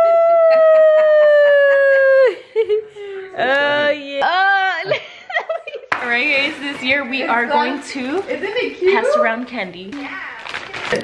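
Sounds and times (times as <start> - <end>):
person howling playfully: 0.0 - 2.4.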